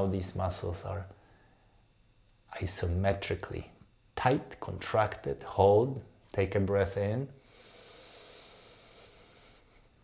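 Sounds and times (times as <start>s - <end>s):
slow breathy inhale: 7.4s - 10.0s.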